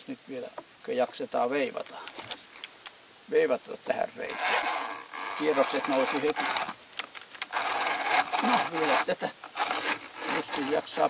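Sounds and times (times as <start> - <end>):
hand drill boring into wood: 4.2 - 11.0.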